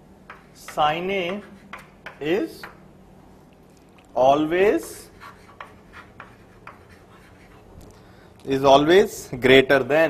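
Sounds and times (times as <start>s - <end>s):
chalk tapping and scratching: 0.2s - 2.8s, 4.6s - 7.9s.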